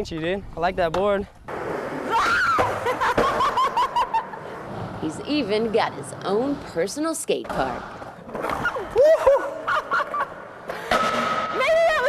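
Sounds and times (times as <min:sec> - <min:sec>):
woman laughing: 0:02.7 - 0:04.6, 0:09.0 - 0:10.9.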